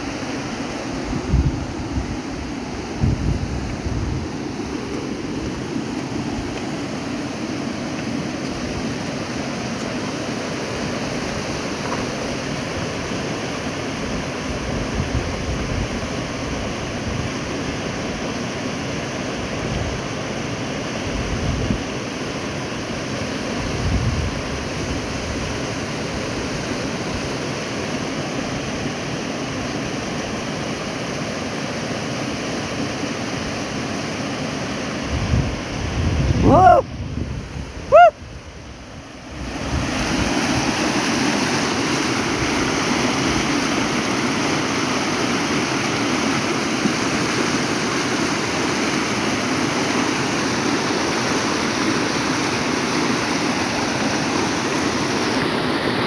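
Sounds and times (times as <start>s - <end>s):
river rushing over stones: 0.0s - 56.0s
wind buffeting microphone: 1.0s - 6.6s, 35.1s - 40.7s.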